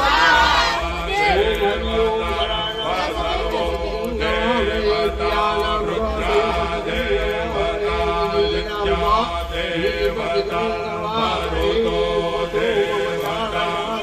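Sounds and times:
mantras being chanted: 0.0s - 14.0s.

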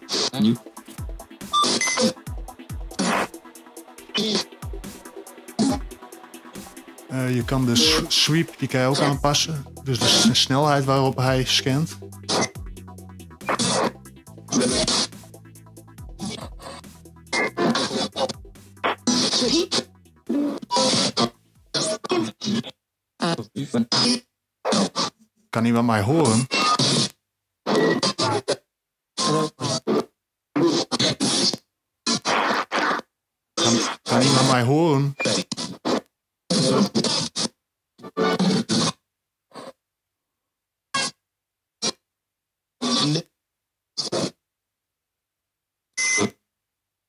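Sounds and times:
radio static bursts: 0.0s - 21.9s
garbled voice-like radio fragments: 0.0s - 22.6s, 33.6s - 37.3s.

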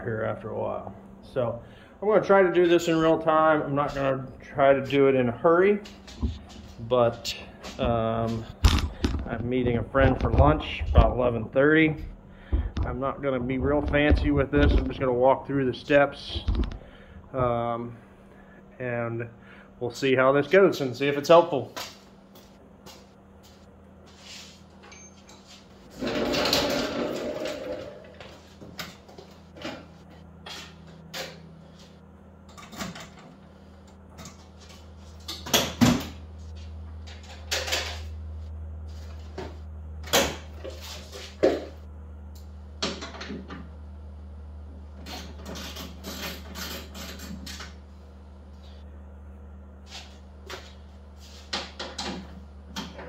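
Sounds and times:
low steady hum: 0.0s - 53.0s.

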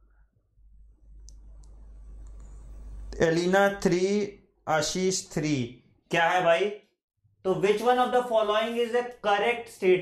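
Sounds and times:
low hum: 0.0s - 3.2s.

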